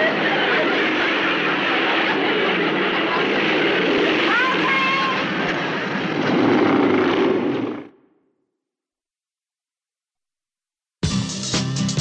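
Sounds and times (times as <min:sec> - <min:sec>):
audience laughter: 0:00.0 - 0:01.4
voices: 0:00.0 - 0:05.5.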